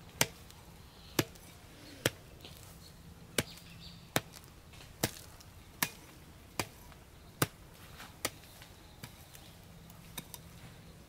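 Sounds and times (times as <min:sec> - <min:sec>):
hand hoe chopping into soil: 0:03.4 - 0:09.4.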